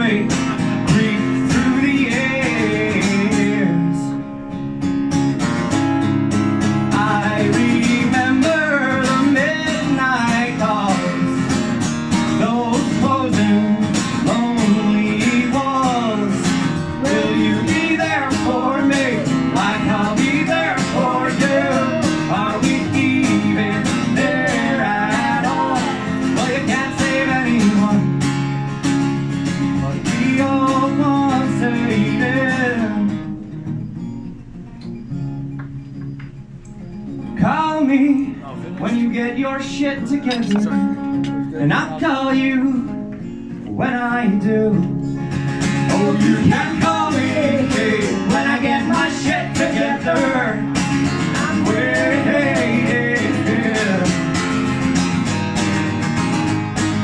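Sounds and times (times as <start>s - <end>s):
man and woman singing: 0.0s - 4.1s, 6.9s - 11.4s, 12.4s - 28.2s, 29.9s - 33.2s, 41.6s - 43.0s, 45.8s - 54.4s
acoustic guitar: 0.0s - 57.0s.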